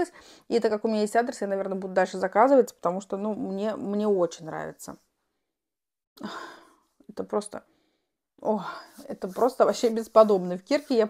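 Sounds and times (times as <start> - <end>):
woman sighing: 6.2 - 6.8.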